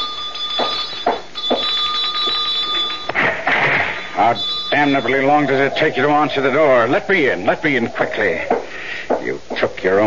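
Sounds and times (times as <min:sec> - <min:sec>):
doorbell ringing: 0:00.0 - 0:07.0.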